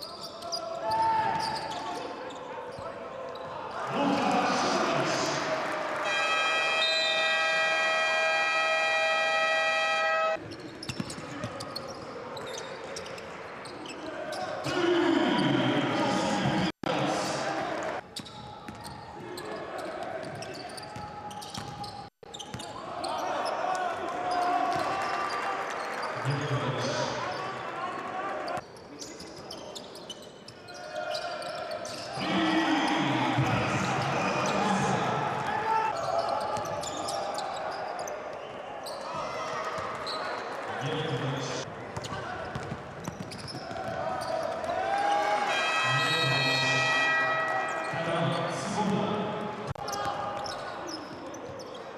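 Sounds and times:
noisy crowd in large hall: 0:00.0 - 0:51.9.

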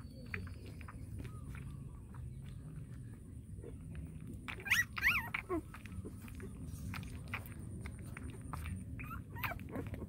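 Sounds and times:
puppy whimpering: 0:04.5 - 0:06.5, 0:08.6 - 0:10.0.

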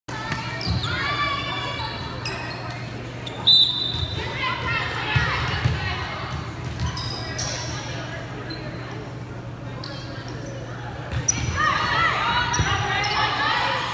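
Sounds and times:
sneaker squeaks: 0:00.3 - 0:04.2, 0:06.6 - 0:09.0, 0:09.8 - 0:11.7.

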